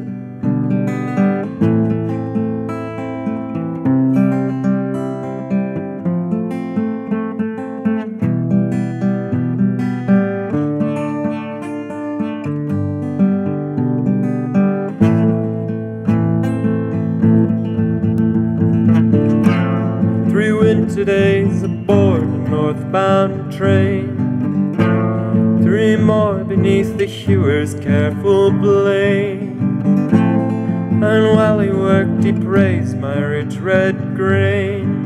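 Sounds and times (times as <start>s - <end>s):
acoustic guitar strumming and picking: 0.0s - 35.0s.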